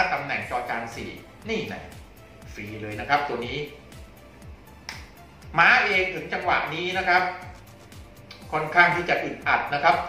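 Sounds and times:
quiet music with ticking beat: 0:00.0 - 0:10.0
sharp click: 0:04.8 - 0:05.1.

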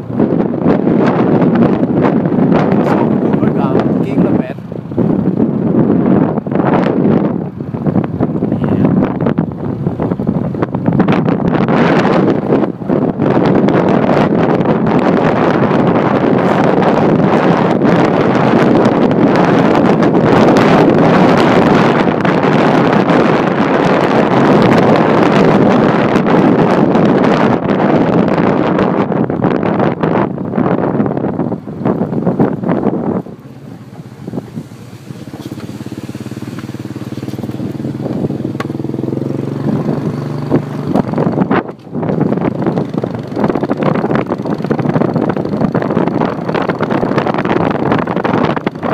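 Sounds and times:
wind buffeting microphone: 0:00.0 - 0:48.9
motorbike engine running: 0:29.5 - 0:48.9.

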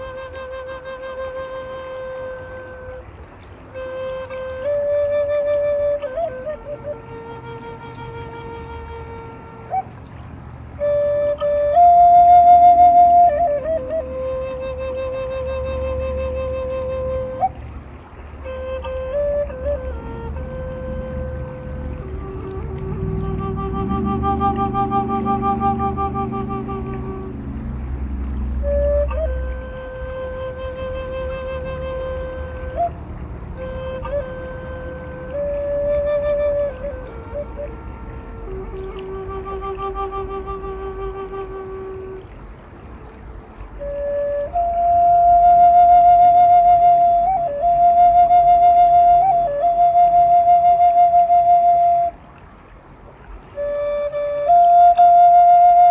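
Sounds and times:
flute playing slow melody: 0:00.0 - 0:55.9.

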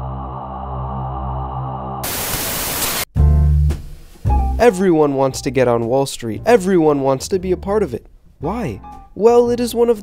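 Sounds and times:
ambient music with low drone: 0:00.0 - 0:02.0
hissing static noise: 0:01.2 - 0:03.1.

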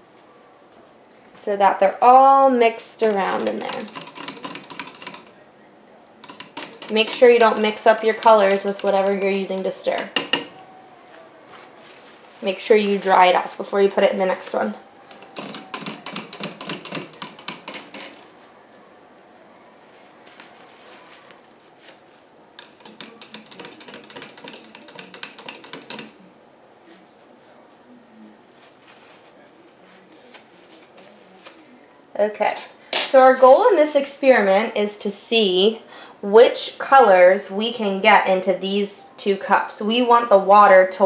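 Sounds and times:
stirrer clicking in plastic cup: 0:03.1 - 0:05.4, 0:06.2 - 0:10.6, 0:15.1 - 0:18.2, 0:22.6 - 0:26.2.

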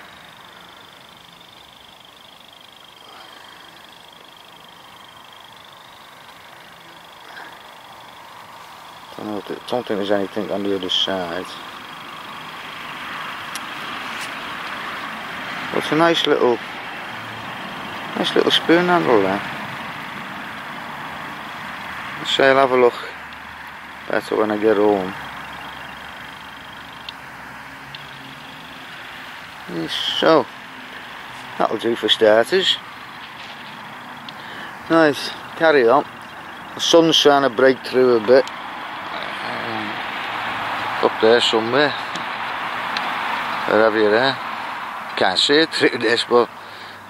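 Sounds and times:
distant vehicles rushing: 0:00.0 - 0:47.0
outdoor background noise: 0:00.0 - 0:47.0
faint clicks: 0:27.0 - 0:27.2, 0:42.1 - 0:43.6
man's voice: 0:34.9 - 0:36.0.

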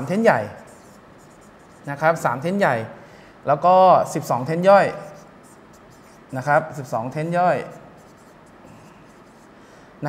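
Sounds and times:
stylus rubbing on glass: 0:00.5 - 0:02.2, 0:04.8 - 0:09.5.

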